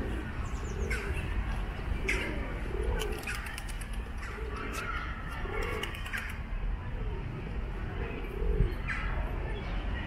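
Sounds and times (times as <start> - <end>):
pigeons cooing: 0.0 - 9.6.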